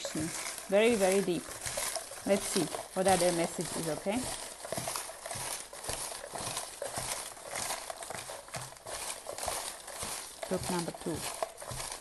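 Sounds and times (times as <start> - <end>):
paper slips rustling: 0.0 - 12.0.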